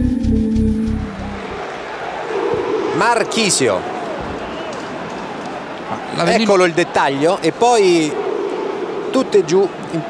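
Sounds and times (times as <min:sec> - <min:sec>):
background music: 0:00.0 - 0:01.6
stadium crowd noise: 0:01.0 - 0:10.0.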